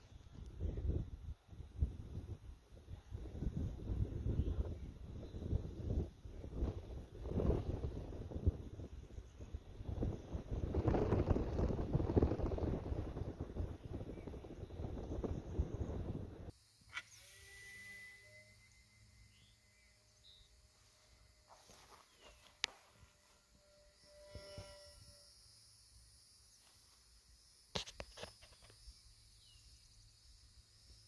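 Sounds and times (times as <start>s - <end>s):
faint thin steady tones: 0.0s - 31.0s
wind buffeting microphone: 0.1s - 16.5s.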